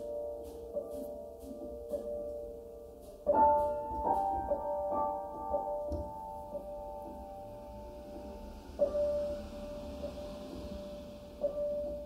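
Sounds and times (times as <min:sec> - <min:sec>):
slow solo piano: 0:00.0 - 0:12.0.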